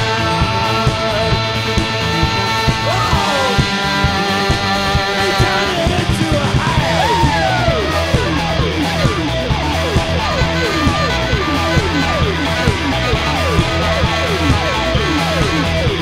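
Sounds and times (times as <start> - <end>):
punk rock band playing: 0.0 - 16.0
falling pitch slide: 2.8 - 16.0.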